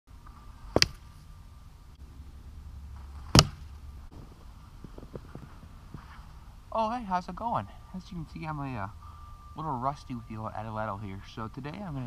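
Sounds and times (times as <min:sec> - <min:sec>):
footsteps in snow: 0:02.9 - 0:06.6
darts striking: 0:03.3 - 0:03.7.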